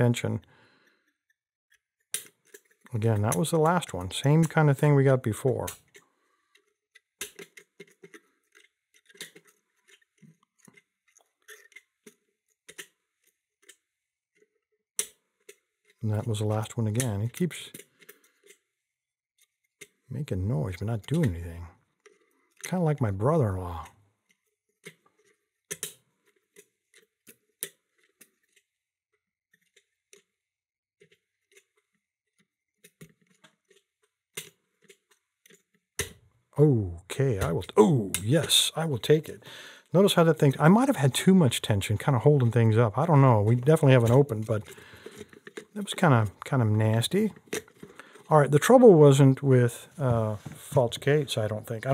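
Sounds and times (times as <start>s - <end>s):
lock pick clicking and scraping: 0.9s - 3.6s, 5.7s - 16.0s, 17.7s - 18.7s, 22.0s - 22.7s, 23.8s - 28.8s, 31.0s - 36.2s, 43.9s - 46.4s, 47.3s - 48.3s.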